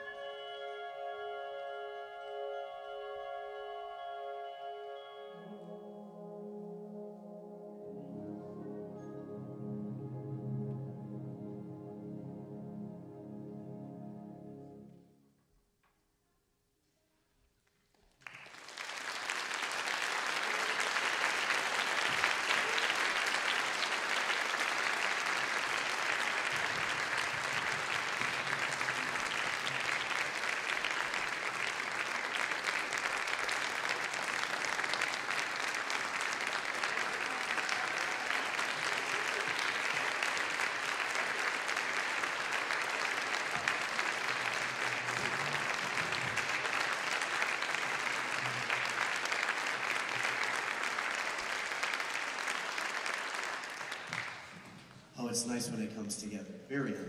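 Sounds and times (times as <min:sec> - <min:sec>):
audience applause: 0:18.1 - 0:54.9.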